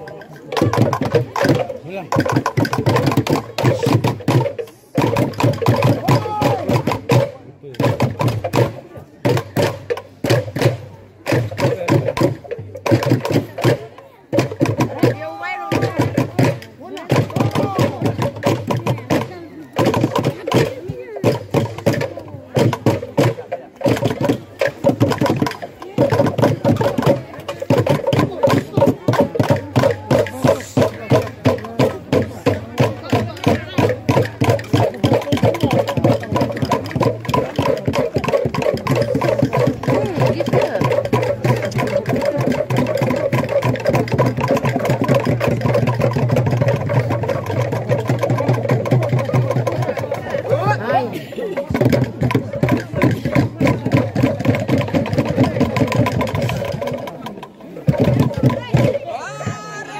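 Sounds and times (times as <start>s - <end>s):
steady percussive beat: 0.0s - 59.9s.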